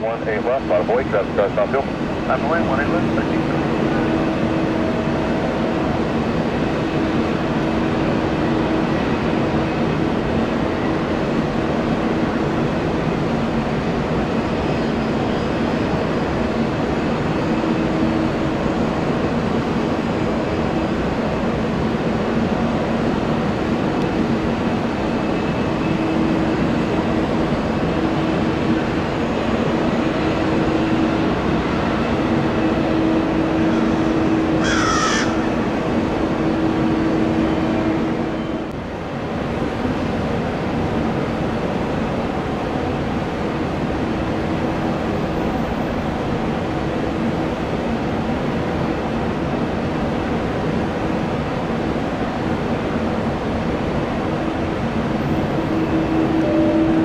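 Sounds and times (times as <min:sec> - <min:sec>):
distant jet engines humming: 0:00.0 - 0:57.0.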